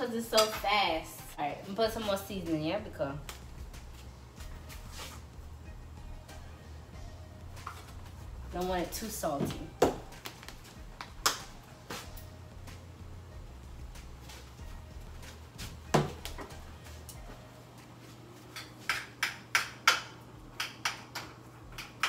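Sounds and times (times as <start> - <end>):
steady low hum: 0.0 - 20.8
utensils and pans clicking: 18.5 - 22.0.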